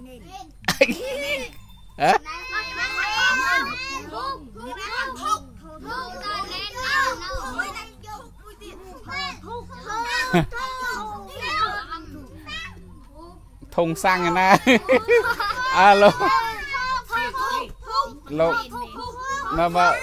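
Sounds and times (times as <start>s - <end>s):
children talking and calling out: 0.0s - 20.0s.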